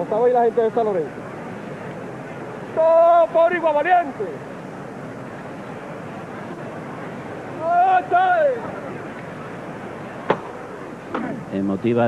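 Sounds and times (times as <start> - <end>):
murmur of street crowd: 0.0 - 12.0
man shouting a call: 2.8 - 4.4, 7.6 - 8.7.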